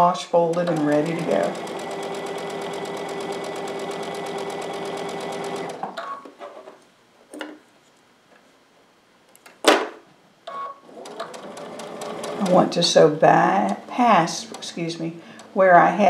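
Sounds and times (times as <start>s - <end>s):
sewing machine stitching: 0.5s - 5.9s, 10.8s - 16.0s.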